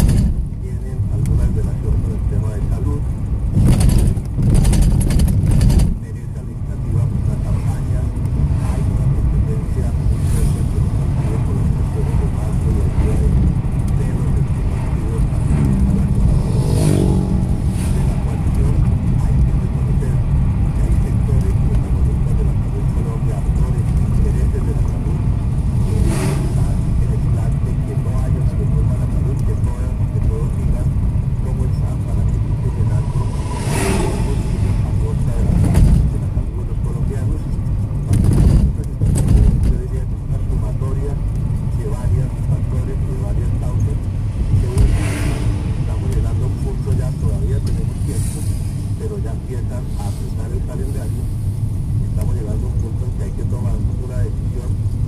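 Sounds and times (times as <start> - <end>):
car cabin road and engine rumble: 0.0 - 55.0.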